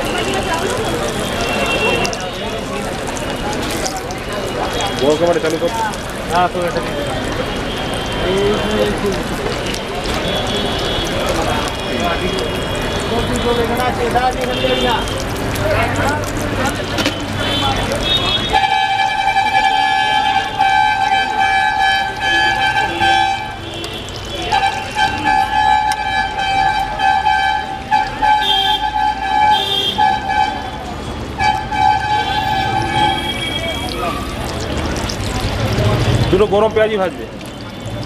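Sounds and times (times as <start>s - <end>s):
fritters deep-frying in oil: 0.0s - 38.0s
loud horn-like tone: 17.5s - 30.8s, 31.4s - 34.3s.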